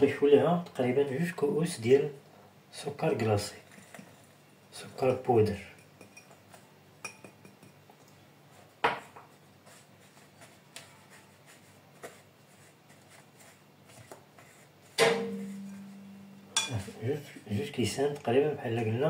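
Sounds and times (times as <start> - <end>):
bowl ringing: 15.1 - 16.8
spoon knocking against bowl: 16.6 - 16.8.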